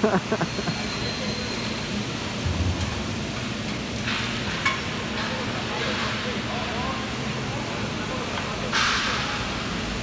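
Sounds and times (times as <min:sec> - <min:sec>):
machinery hum and hiss: 0:00.0 - 0:10.0.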